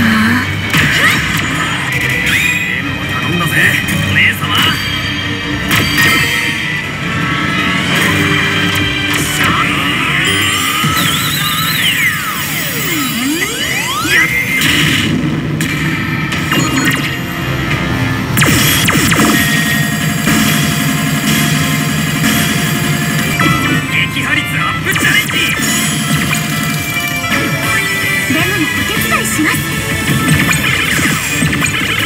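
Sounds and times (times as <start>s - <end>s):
slot machine music: 0.0s - 32.0s
electronic pitch sweep: 9.9s - 14.6s.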